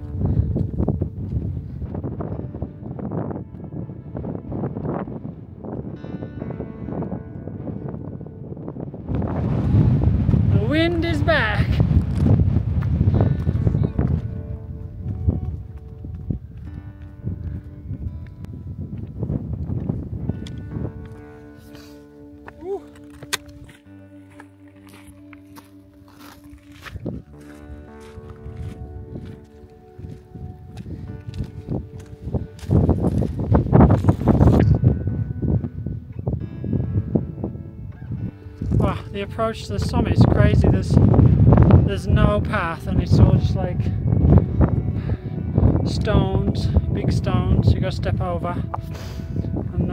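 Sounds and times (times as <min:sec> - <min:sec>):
wind buffeting microphone: 0:00.0 - 0:24.2, 0:26.0 - 0:49.9
background music of held notes: 0:00.0 - 0:49.9.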